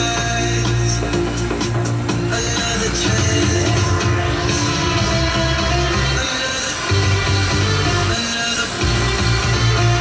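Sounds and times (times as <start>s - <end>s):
bass line: 0.0s - 6.3s, 6.9s - 8.2s, 8.8s - 10.0s
music from a radio: 0.0s - 10.0s.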